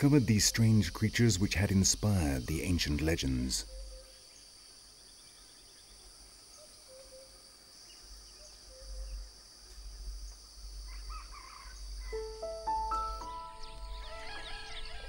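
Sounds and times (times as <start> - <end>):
chirps: 0.0 - 15.0
insects droning: 0.0 - 15.0.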